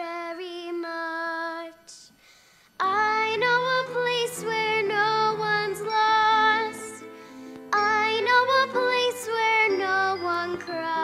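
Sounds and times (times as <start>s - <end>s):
girl singing: 0.0s - 2.2s, 2.8s - 11.0s.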